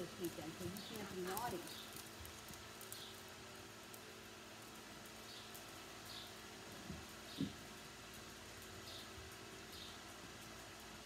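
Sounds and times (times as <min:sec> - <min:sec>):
small birds chirping: 0:00.0 - 0:04.1, 0:05.0 - 0:10.8
low steady hum: 0:00.0 - 0:11.0.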